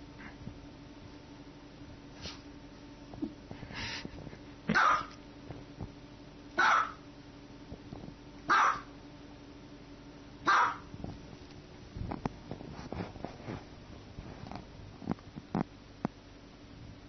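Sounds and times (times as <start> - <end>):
small dog barking: 4.7 - 5.2, 6.6 - 7.0, 8.4 - 8.9, 10.4 - 10.9.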